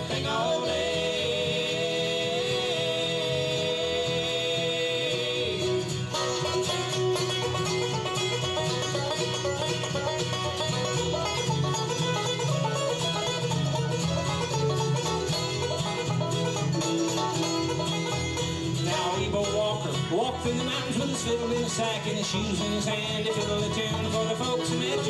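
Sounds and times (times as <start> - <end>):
acoustic guitar picking: 0.0 - 25.0
banjo picking: 0.0 - 25.0
mandolin picking: 0.0 - 25.0
upright bass line: 0.0 - 25.0.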